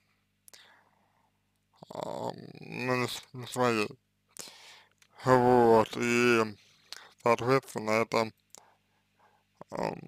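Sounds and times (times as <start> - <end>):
short breath: 0.5 - 1.4, 4.4 - 5.0
man speaking: 1.8 - 4.5, 5.2 - 8.4, 9.6 - 10.0.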